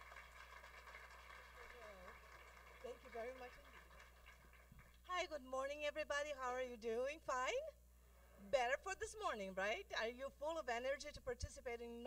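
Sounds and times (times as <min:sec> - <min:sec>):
audience clapping: 0:00.0 - 0:05.1.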